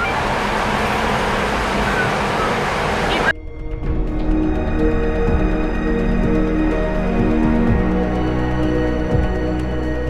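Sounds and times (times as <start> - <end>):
loud rushing noise: 0.0 - 3.3
music with long held tones: 3.4 - 10.0.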